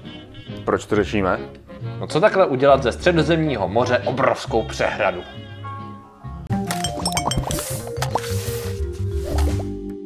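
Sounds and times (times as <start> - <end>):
intro jingle music: 6.6 - 8.3.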